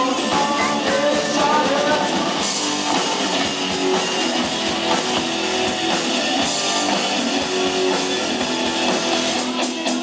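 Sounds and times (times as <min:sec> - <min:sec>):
bass guitar: 0:00.0 - 0:10.0
drum kit beat: 0:00.0 - 0:10.0
electric guitar: 0:00.0 - 0:10.0.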